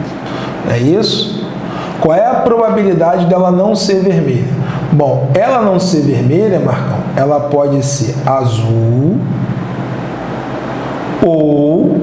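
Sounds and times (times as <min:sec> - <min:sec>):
background hiss: 0:00.0 - 0:12.0
man speaking: 0:00.6 - 0:09.4, 0:11.2 - 0:12.0.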